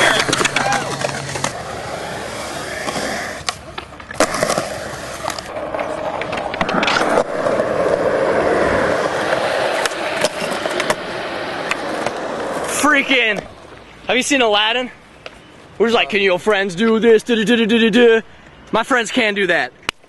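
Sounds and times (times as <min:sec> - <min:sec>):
skateboard clacks: 0:00.0 - 0:13.5
skateboard wheels rolling on concrete: 0:00.0 - 0:18.2.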